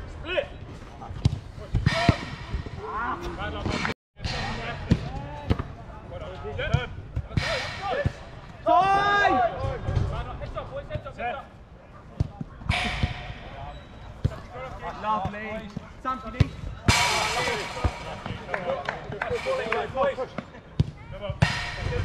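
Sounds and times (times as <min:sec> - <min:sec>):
players shouting: 0:07.5 - 0:09.8.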